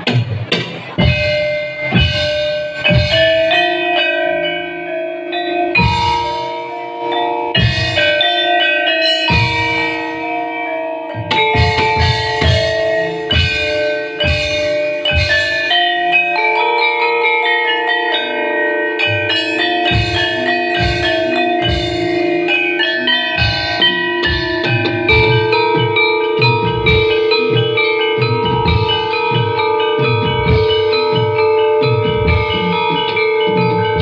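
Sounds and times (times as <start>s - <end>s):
gamelan metallophones struck: 0.0s - 34.0s
low beat: 0.0s - 34.0s.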